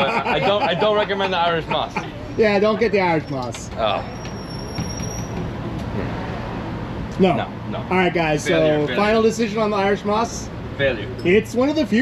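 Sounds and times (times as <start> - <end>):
street traffic: 0.0 - 12.0
high thin squeal: 4.1 - 5.4.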